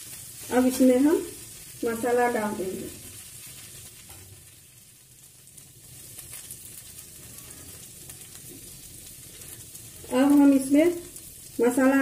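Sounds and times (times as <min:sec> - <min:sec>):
vegetables sizzling in oil: 0:00.0 - 0:12.0.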